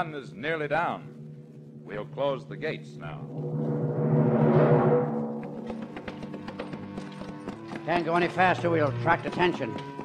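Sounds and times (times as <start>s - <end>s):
horse hooves clip-clopping: 5.6s - 10.0s.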